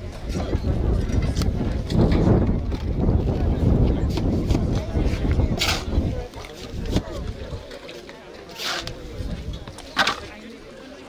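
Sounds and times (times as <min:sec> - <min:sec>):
shovel scraping wet cement: 0:05.5 - 0:07.0, 0:08.4 - 0:09.0, 0:09.9 - 0:10.3.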